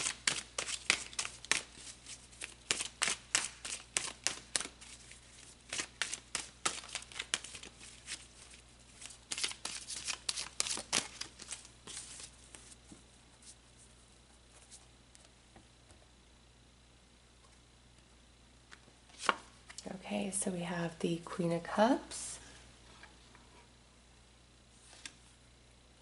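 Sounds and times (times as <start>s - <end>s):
cards being shuffled: 0.0s - 13.6s, 19.1s - 19.8s, 24.8s - 25.2s.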